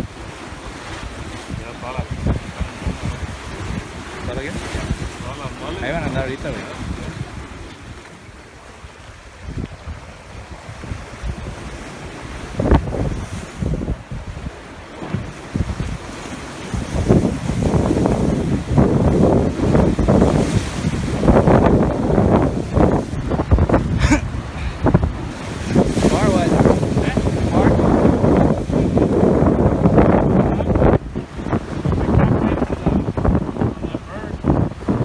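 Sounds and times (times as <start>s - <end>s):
surf breaking against rocks: 0.0s - 35.0s
wind buffeting microphone: 0.0s - 35.0s.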